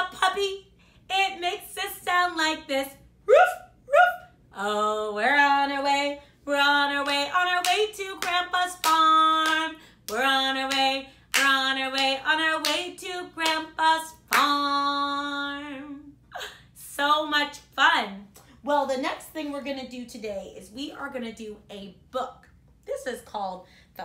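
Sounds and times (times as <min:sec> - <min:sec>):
woman singing: 0:00.0 - 0:19.7.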